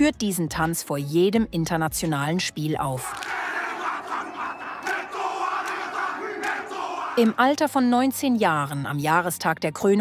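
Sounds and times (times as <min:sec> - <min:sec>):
men shouting a war chant: 0:03.1 - 0:07.4
stadium crowd noise: 0:03.1 - 0:07.5.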